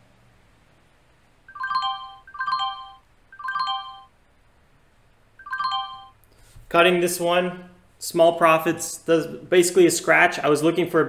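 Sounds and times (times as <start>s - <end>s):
phone ringtone chiming: 1.5s - 4.1s, 5.4s - 6.2s.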